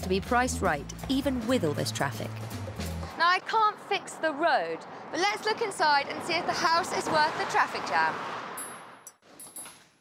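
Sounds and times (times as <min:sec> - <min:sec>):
street traffic noise: 0:00.0 - 0:09.9.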